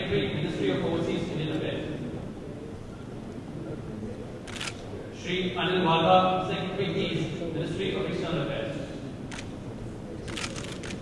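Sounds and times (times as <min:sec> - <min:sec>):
low background noise: 0:00.0 - 0:11.0
camera shutter clicks: 0:04.5 - 0:04.9, 0:09.3 - 0:09.5, 0:10.3 - 0:11.0.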